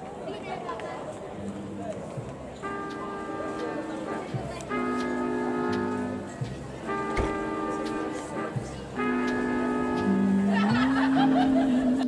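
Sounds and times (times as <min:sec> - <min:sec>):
crowd chatter: 0:00.0 - 0:12.0
held musical chord: 0:02.6 - 0:12.0.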